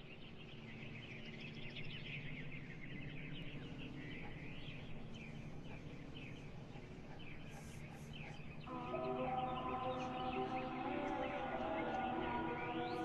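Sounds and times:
reverberant birdsong chirps: 0:00.0 - 0:13.0.

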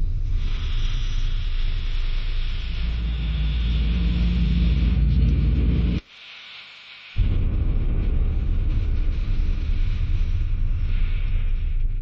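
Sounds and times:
deep rumbling drone: 0:00.0 - 0:06.0, 0:07.2 - 0:12.0
steady hiss: 0:00.0 - 0:12.0.

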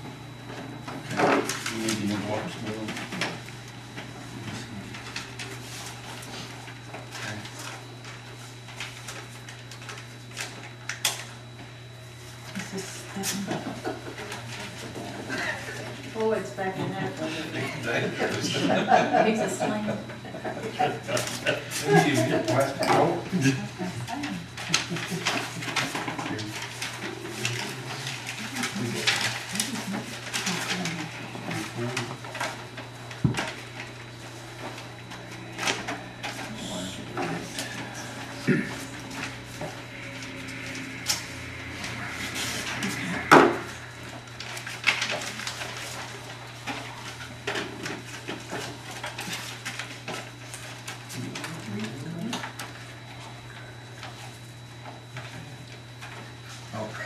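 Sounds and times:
steady low hum: 0:00.0 - 0:57.0
paper rustling: 0:01.1 - 0:11.4, 0:24.3 - 0:56.7
faint voices: 0:35.5 - 0:44.2.

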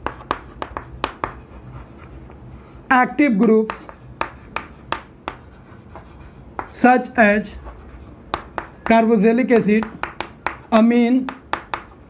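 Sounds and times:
chalk tapping on chalkboard: 0:00.0 - 0:02.4, 0:03.6 - 0:12.0
chalk scratching on chalkboard: 0:00.0 - 0:02.9, 0:03.6 - 0:12.0
man speaking: 0:08.9 - 0:10.0, 0:10.7 - 0:11.4.

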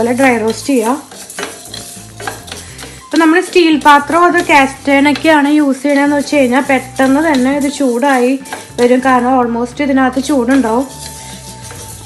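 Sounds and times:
wooden spatula scraping a pan: 0:00.0 - 0:12.0.

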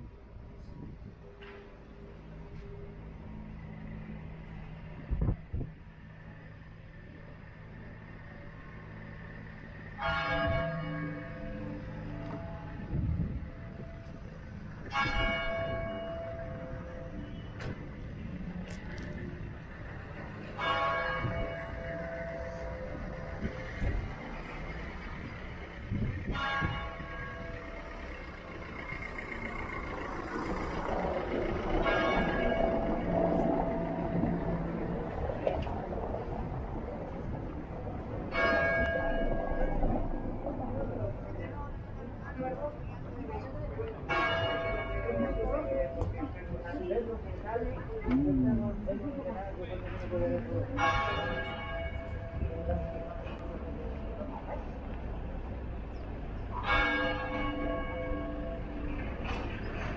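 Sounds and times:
street noise: 0:00.0 - 0:59.9
church bell tolling: 0:10.0 - 0:12.9, 0:14.8 - 0:17.2, 0:20.4 - 0:23.5, 0:26.3 - 0:28.2, 0:31.7 - 0:35.2, 0:38.3 - 0:40.6, 0:44.0 - 0:46.3, 0:50.6 - 0:54.6, 0:56.6 - 0:59.0.

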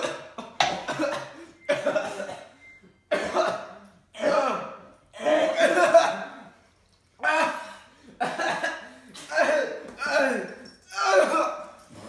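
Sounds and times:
boys coughing and gagging: 0:00.0 - 0:11.8.

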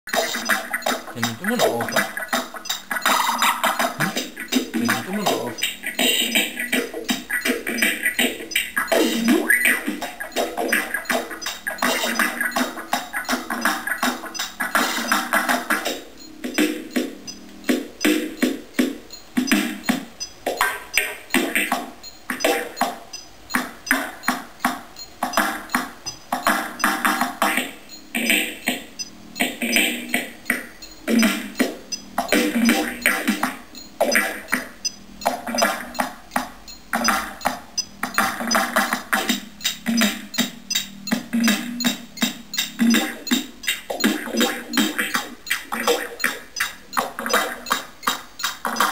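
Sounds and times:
electronic dance music: 0:01.2 - 0:02.0, 0:04.8 - 0:05.6.

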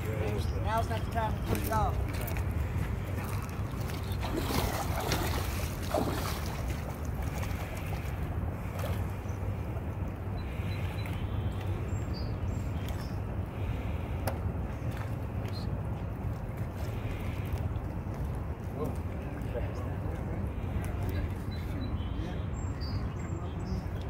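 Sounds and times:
water splashing around legs: 0:00.0 - 0:21.6.

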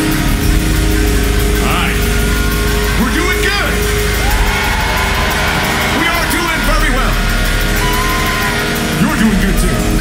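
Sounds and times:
drums: 0:00.0 - 0:10.0
live rock band playing: 0:00.0 - 0:10.0.

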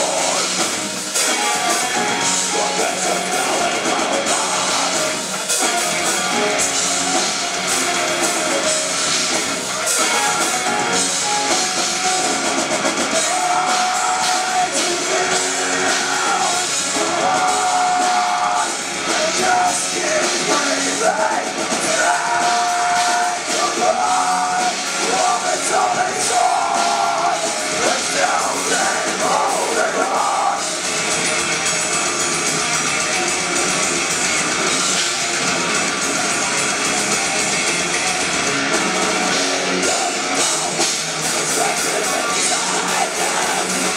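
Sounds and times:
bass guitar: 0:00.0 - 0:43.9
death metal band playing live: 0:00.0 - 0:43.9
distorted electric guitars: 0:00.0 - 0:43.9
drum kit: 0:00.0 - 0:43.9.

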